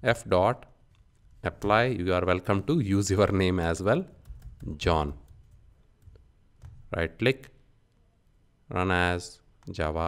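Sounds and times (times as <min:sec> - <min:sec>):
computer keyboard and mouse clicks: 0:04.1 - 0:06.9.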